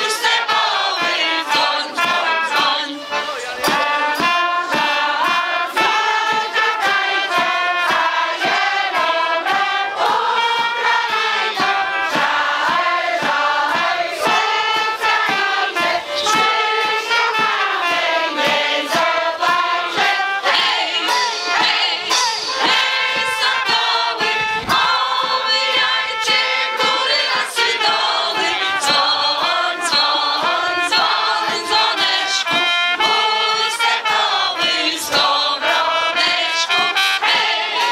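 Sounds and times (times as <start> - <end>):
massed choir singing folk song: 0.0 - 37.9.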